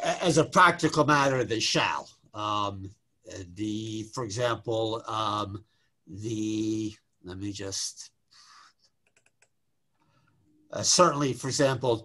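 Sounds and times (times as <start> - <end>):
computer clicks: 9.0 - 9.6.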